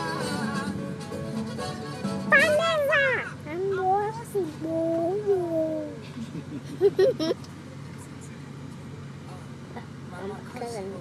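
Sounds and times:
girl laughing: 6.0s - 7.5s.

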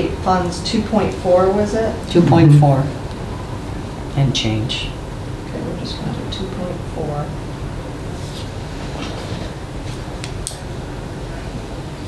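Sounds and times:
low room rumble: 2.0s - 3.4s.

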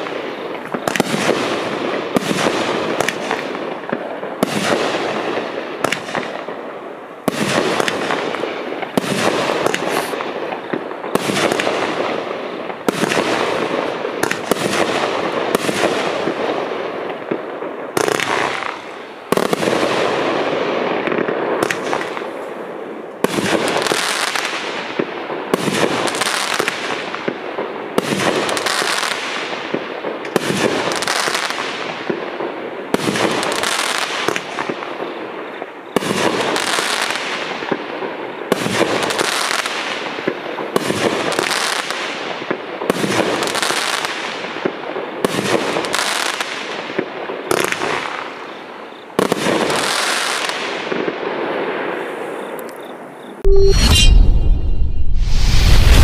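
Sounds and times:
firework bangs: 0.0s - 52.4s
firework hiss and crackle: 0.0s - 53.4s.

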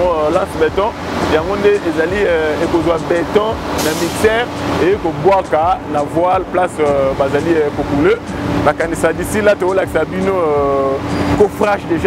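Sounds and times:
man talking: 0.0s - 12.0s
steady low hum: 0.0s - 12.0s.

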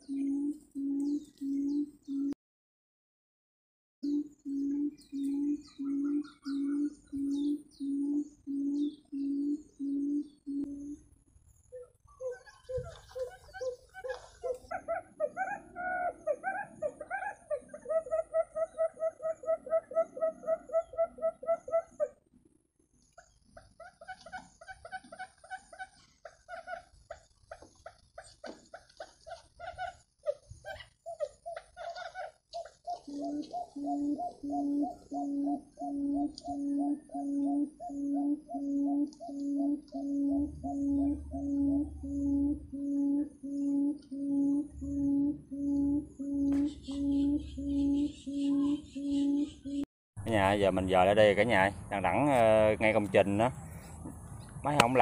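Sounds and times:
quail calls through loudspeaker: 11.8s - 22.2s, 29.3s - 49.8s.

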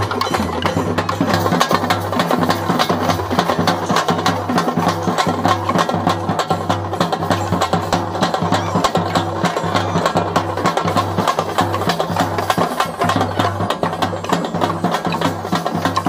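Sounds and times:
drums beaten with sticks: 0.0s - 16.0s.

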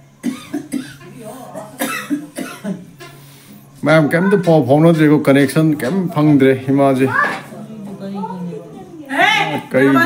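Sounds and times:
woman coughing: 0.2s - 3.2s.

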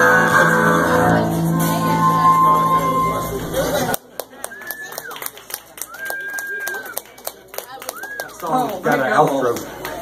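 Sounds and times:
audience clapping: 3.9s - 10.0s
high cheers: 4.4s - 7.1s, 7.8s - 8.4s.

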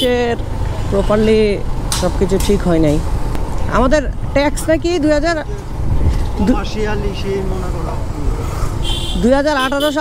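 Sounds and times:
motorcycle engine: 0.0s - 10.0s
wind on microphone: 5.8s - 6.4s.

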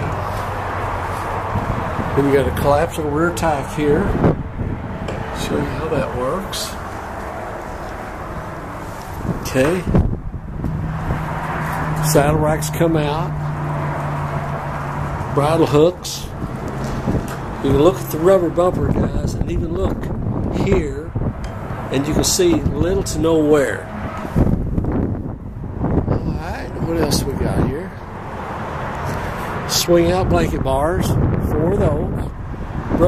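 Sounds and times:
wind on microphone: 0.0s - 33.0s.

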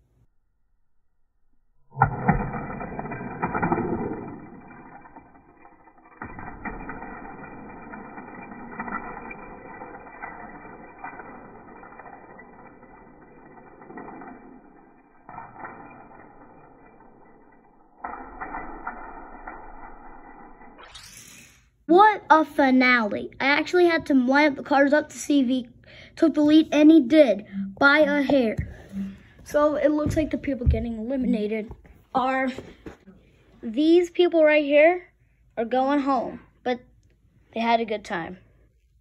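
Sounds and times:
toy car rattling down track: 2.3s - 21.7s.

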